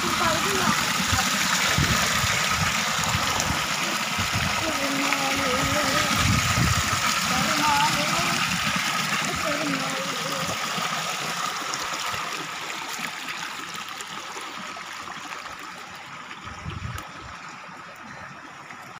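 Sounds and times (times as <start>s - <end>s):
water pouring into a tank: 0.0s - 18.9s.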